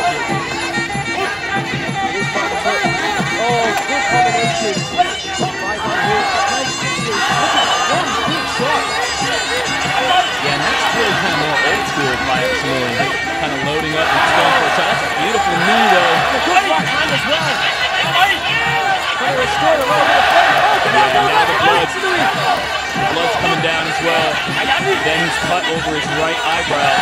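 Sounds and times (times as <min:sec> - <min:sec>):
crowd noise and voices: 0:00.0 - 0:27.0
reedy oboe melody: 0:00.0 - 0:27.0.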